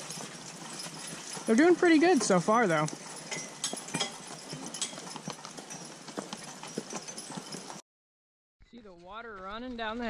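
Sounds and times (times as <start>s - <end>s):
horse hoofbeats on wet dirt: 0.0s - 7.8s.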